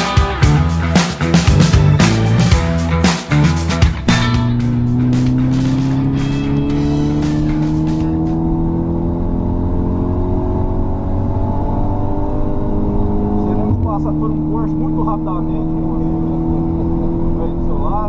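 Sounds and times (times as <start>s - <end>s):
music track: 0.0s - 8.5s
car engine accelerating hard: 1.2s - 18.0s.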